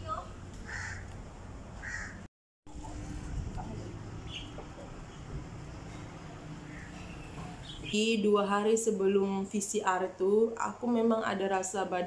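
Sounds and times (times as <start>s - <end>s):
bird calling: 6.6s - 8.0s.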